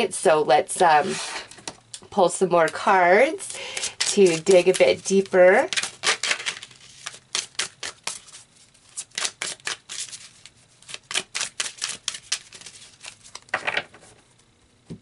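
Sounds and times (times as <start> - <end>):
cards being shuffled: 3.7 - 14.2.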